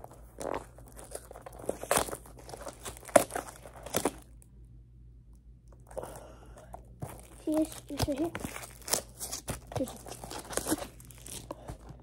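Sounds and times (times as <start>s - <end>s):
packaging crinkled and torn open: 0.0s - 4.4s, 7.0s - 12.0s.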